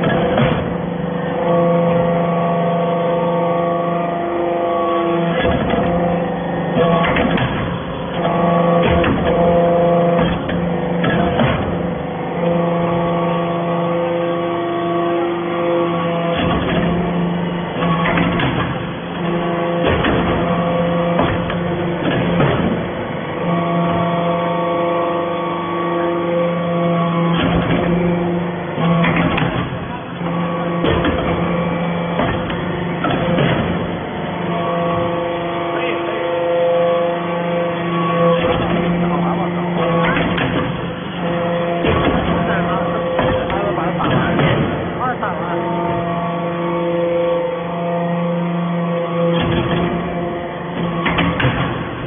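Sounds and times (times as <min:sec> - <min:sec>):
hydraulic pump humming: 0:00.0 - 0:52.0.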